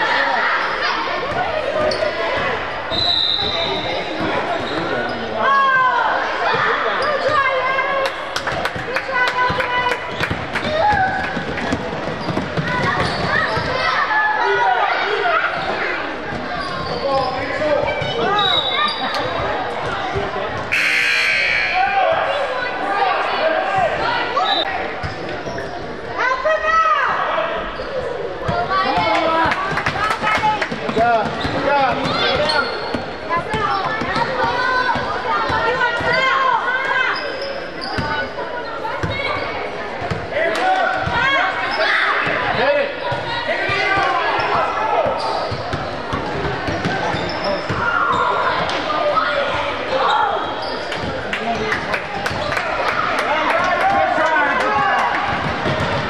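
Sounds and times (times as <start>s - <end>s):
voices in echoing hall: 0.0s - 56.0s.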